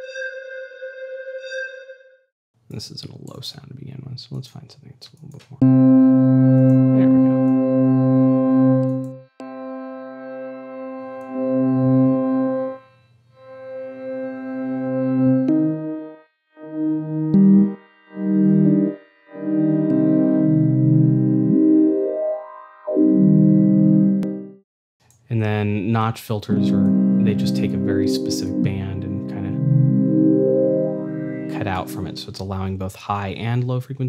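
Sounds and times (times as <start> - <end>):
low dark organ notes: 5.6 - 24.6, 26.0 - 32.6.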